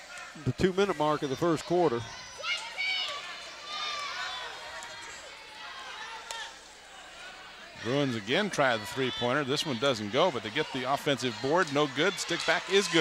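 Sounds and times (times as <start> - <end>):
murmur of crowd voices: 0.0 - 13.0.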